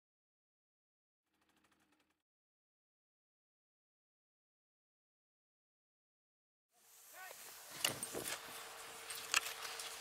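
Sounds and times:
steady outdoor hiss: 6.7 - 10.0.

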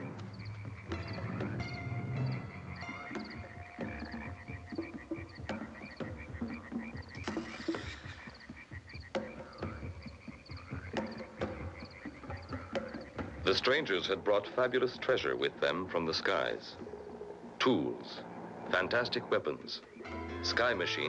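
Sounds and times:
rhythmic croaking calls: 0.0 - 21.0.

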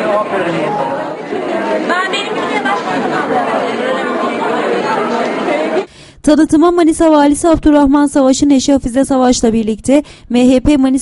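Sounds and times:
crowd chatter: 0.0 - 5.9.

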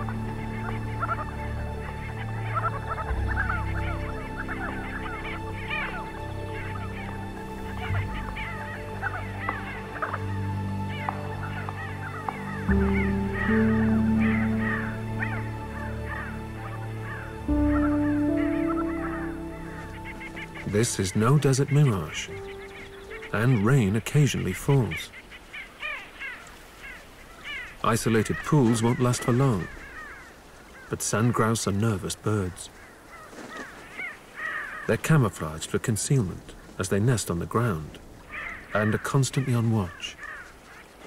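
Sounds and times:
music of held low notes: 0.0 - 25.0
birds calling in flight: 0.0 - 31.6, 32.5 - 34.9, 38.0 - 41.0.

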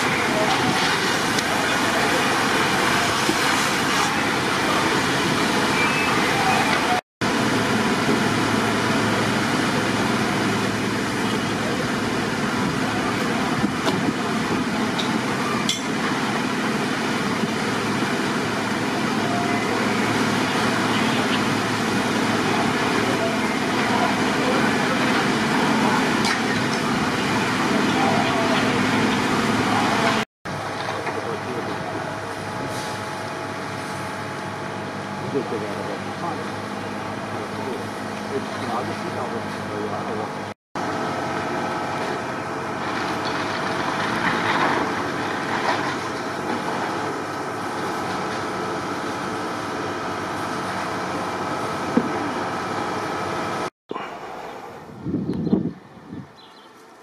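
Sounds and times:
fire engines running: 0.0 - 57.0.

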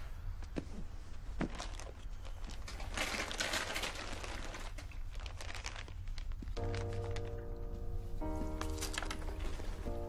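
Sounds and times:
dense rustling with crackles: 0.6 - 7.5, 8.2 - 10.0
soft film score music: 6.2 - 10.0.

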